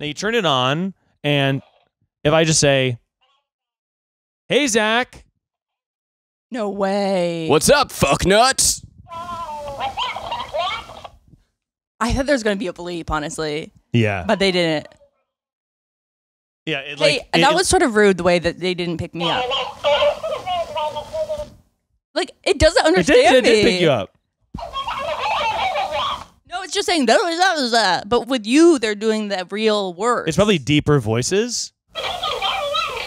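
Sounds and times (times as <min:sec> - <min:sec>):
toy repeating words in squeaky voice: 0:32.0 - 0:33.0.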